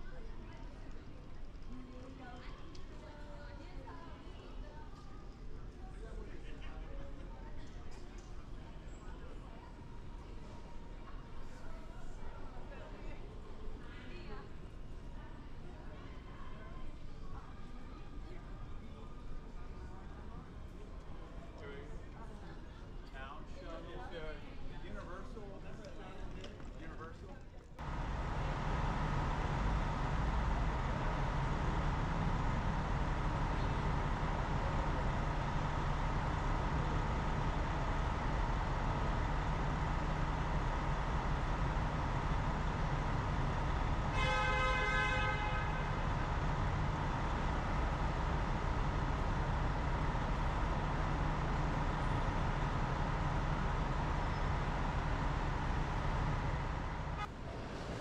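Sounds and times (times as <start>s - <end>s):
diesel bus engine idling: 27.8s - 57.8s
vehicle horn toot: 42.2s - 47.6s.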